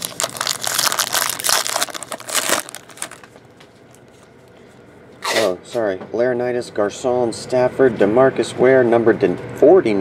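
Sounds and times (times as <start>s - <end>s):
foil wrapper crinkling torn open: 0.0s - 4.0s.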